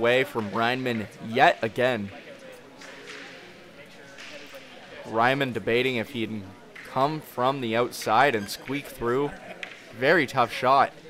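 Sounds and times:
murmur of voices in a hall: 0:00.0 - 0:11.0.

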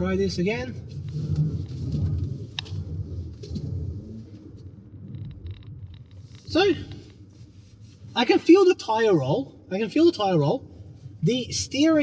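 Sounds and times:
road and tyre rumble in car: 0:00.0 - 0:12.0.

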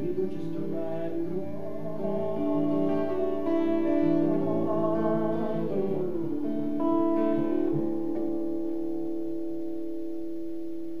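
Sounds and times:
acoustic guitar chord ringing: 0:00.0 - 0:11.0.

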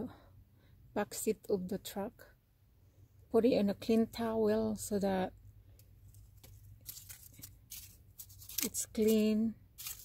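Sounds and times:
faint short rustles: 0:05.9 - 0:10.0.

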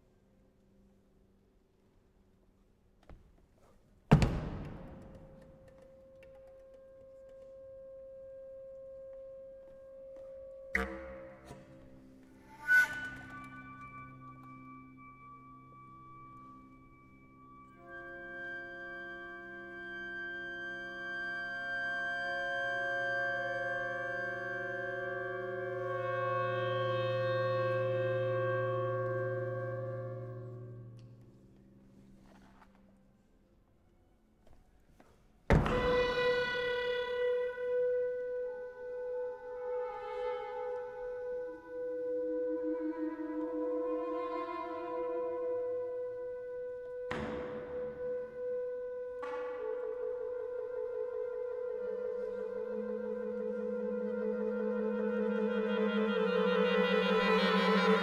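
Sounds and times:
ensemble music: 0:04.5 - 0:33.9, 0:35.6 - 0:58.0.

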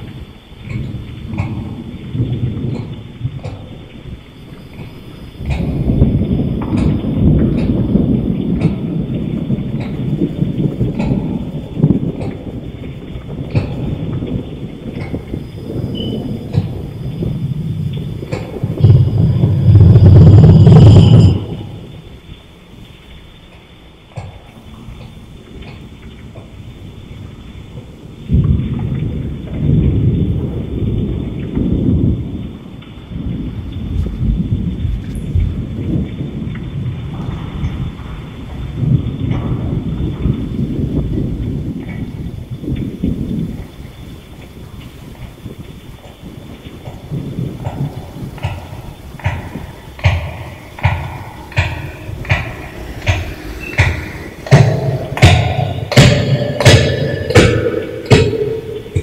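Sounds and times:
loud thunderclap: 0:00.0 - 0:22.9, 0:26.4 - 0:59.0
low rolling thunder rumbles: 0:00.0 - 0:59.0
steady rain: 0:00.0 - 0:59.0.

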